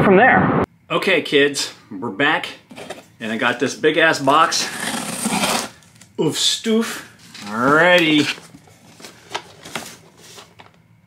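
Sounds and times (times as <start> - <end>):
packaging rustle: 7.1 - 10.8.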